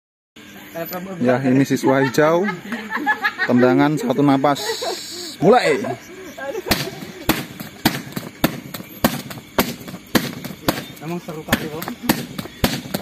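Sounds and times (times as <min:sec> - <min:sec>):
kicks smacking a kick shield: 0:06.7 - 0:13.0.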